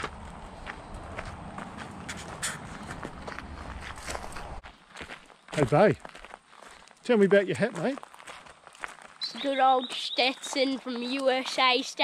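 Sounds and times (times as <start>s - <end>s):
footsteps on dry dirt and leaves: 0.0s - 11.9s.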